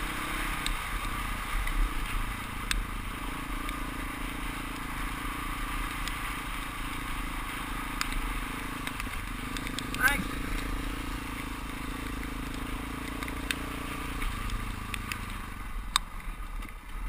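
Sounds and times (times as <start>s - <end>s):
motorcycle engine running: 0.0s - 17.0s
stones ticking: 7.4s - 17.0s.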